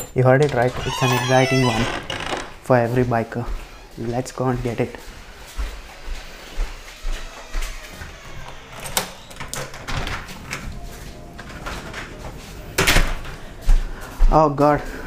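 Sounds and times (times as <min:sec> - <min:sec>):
footsteps: 0:00.7 - 0:15.0.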